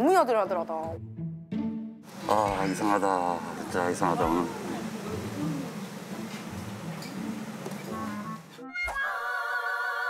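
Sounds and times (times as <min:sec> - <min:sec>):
quiet background music: 0:00.0 - 0:08.8.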